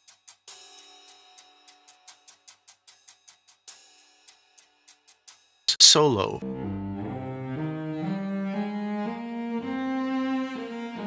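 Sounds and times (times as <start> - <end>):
ticking percussion pattern: 0.0 - 6.4.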